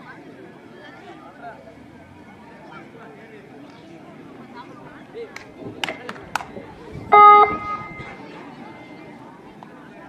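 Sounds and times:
crowd chatter: 0.0s - 10.0s
horn-like beep: 7.1s - 8.2s.

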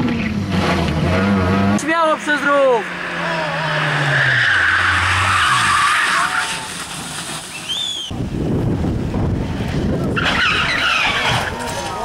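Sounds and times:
rally car engine revving: 0.0s - 7.5s, 9.2s - 12.0s
tyres squealing: 2.1s - 8.1s, 10.2s - 12.0s.

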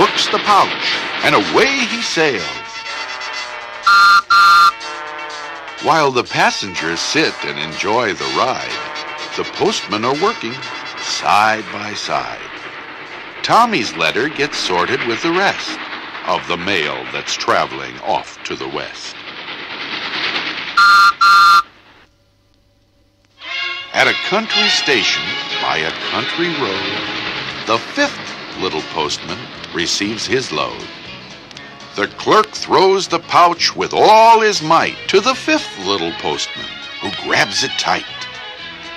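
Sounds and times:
whistle tooting: 3.9s - 4.8s, 20.8s - 21.7s
soft background music: 23.5s - 28.1s.

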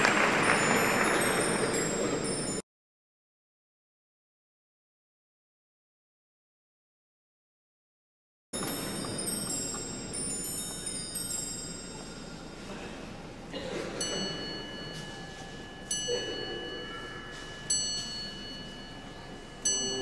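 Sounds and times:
bell chimes ringing: 0.0s - 2.6s, 8.6s - 12.9s, 13.9s - 20.0s.

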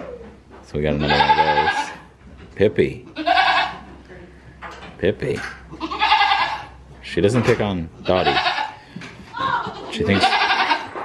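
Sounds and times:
goat bleating: 0.9s - 2.1s, 3.1s - 3.9s, 5.7s - 6.8s, 8.0s - 11.0s.

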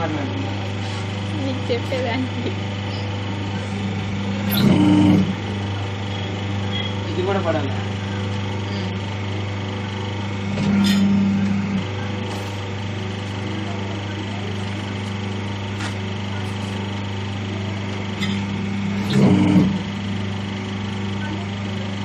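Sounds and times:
machine motor hum: 0.0s - 22.0s.

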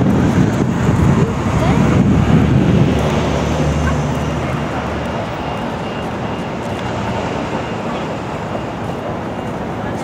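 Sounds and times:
low rumble of motor traffic: 0.0s - 10.0s.

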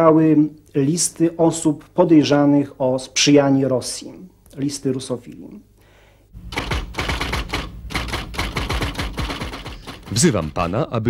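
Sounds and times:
typewriter keys clacking: 6.5s - 10.8s.

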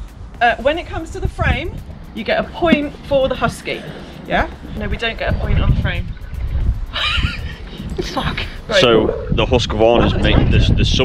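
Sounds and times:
wind on microphone: 0.0s - 11.0s
person laughing: 6.9s - 8.7s.

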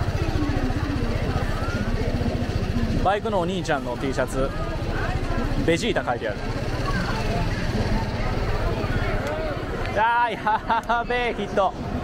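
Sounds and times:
motorcycle engine idling: 0.0s - 10.1s
crowd voices: 0.0s - 12.0s.

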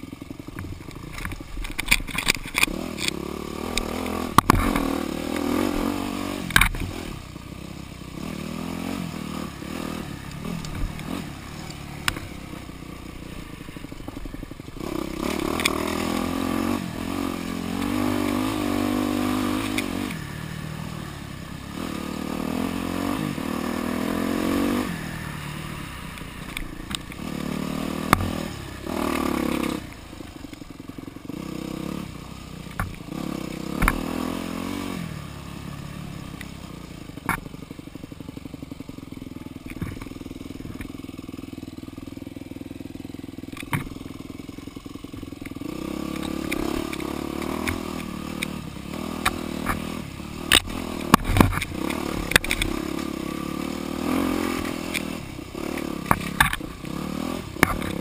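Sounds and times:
knocks and clatter over rough ground: 0.0s - 7.3s, 26.1s - 31.3s, 32.6s - 34.8s, 36.4s - 38.8s, 39.4s - 41.4s, 43.3s - 58.0s
dirt bike engine revving: 0.0s - 58.0s.

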